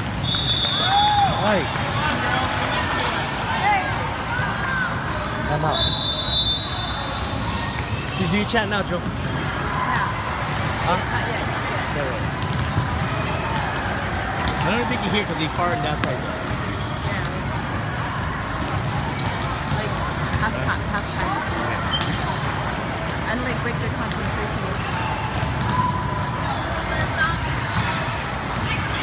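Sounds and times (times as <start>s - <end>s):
balls bouncing on court: 0.0s - 5.8s, 7.1s - 29.0s
crowd noise in a hall: 0.0s - 29.0s
voices chattering: 0.0s - 29.0s
referee's whistle blast: 0.2s - 1.5s, 5.7s - 7.4s.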